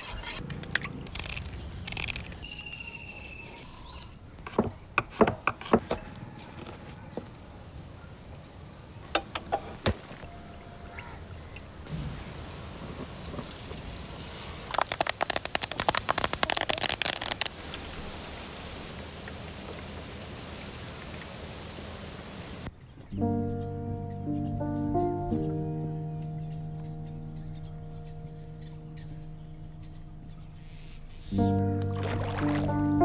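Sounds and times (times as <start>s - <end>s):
steady low hiss: 7.2s - 33.0s.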